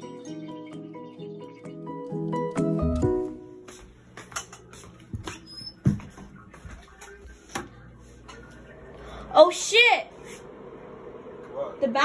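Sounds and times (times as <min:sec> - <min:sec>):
music track: 0:00.0 - 0:03.8.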